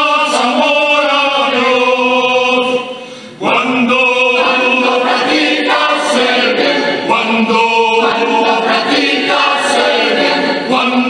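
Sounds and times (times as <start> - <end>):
mixed choir singing in harmony: 0.0 - 11.0.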